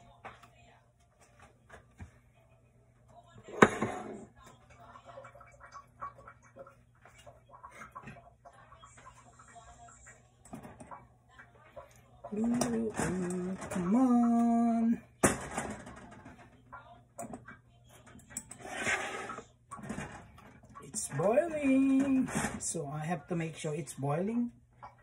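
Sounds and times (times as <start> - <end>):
kitchenware clattering at a sink: 3.4 - 23.4.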